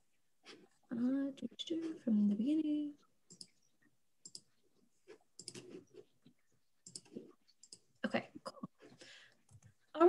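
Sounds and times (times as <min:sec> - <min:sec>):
computer mouse clicks: 0:03.3 - 0:04.5, 0:05.4 - 0:05.8, 0:06.8 - 0:07.9.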